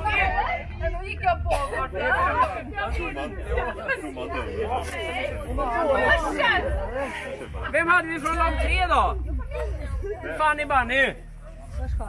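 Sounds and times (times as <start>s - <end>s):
people chattering: 0.0s - 12.0s
steady low rumble: 0.0s - 12.0s.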